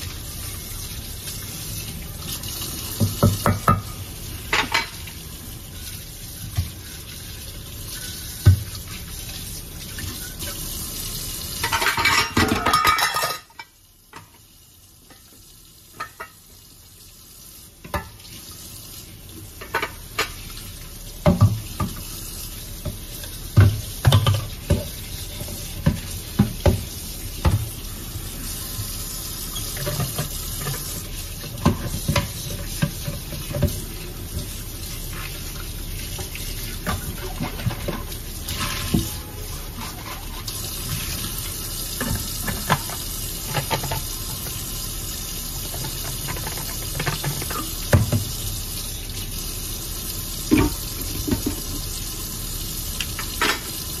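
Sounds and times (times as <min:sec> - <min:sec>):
tap running into sink: 0:02.9 - 0:04.0, 0:21.2 - 0:22.1, 0:22.8 - 0:27.8, 0:29.6 - 0:34.6, 0:45.6 - 0:48.4, 0:50.5 - 0:51.9
cookware clinking: 0:11.6 - 0:13.8.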